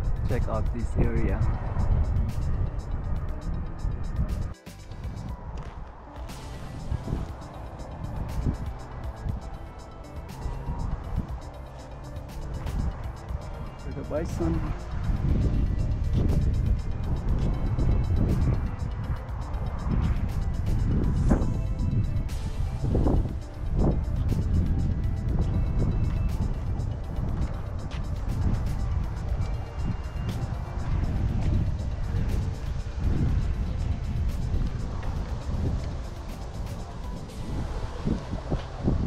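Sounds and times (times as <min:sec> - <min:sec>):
quiet background music: 0:00.0 - 0:39.0
wind buffeting microphone: 0:00.0 - 0:39.0.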